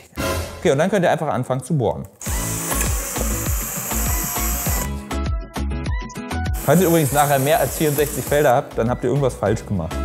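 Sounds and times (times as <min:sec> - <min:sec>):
drill boring through foam: 0:02.2 - 0:04.9, 0:06.6 - 0:08.5
background music with steady beat: 0:02.2 - 0:10.0.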